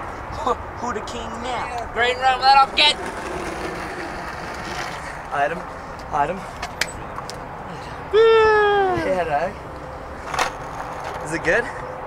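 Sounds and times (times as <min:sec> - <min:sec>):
person yelling: 0:08.1 - 0:09.2.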